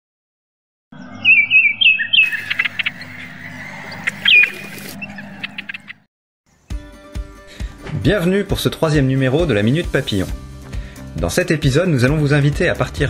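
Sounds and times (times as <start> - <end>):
songbird chirping: 1.0 - 6.0
steady low hum: 2.3 - 6.0.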